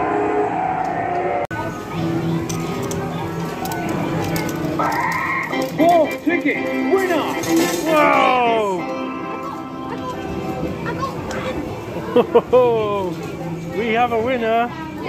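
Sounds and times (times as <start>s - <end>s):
falling electronic tones: 0.0s - 1.5s
coin-pusher machine clinks: 2.3s - 9.6s
arcade electronic music and jingles: 4.3s - 11.2s.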